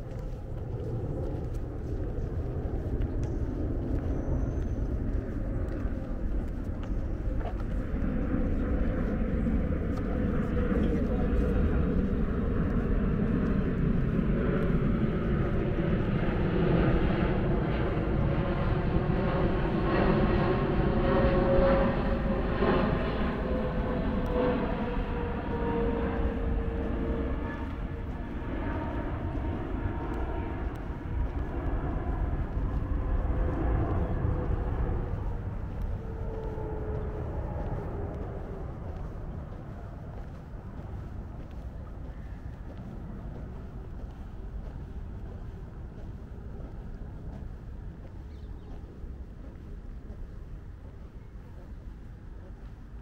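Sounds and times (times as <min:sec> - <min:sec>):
jet airliner passing overhead: 0:00.0 - 0:53.0.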